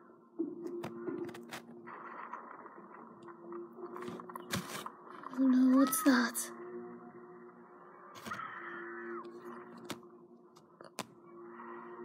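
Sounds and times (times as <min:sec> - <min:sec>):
muffled cartoon audio from speaker: 0:05.4 - 0:06.6.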